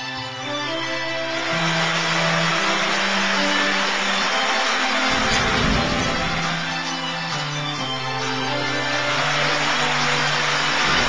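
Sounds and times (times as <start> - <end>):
held music tones: 0.0 - 11.0.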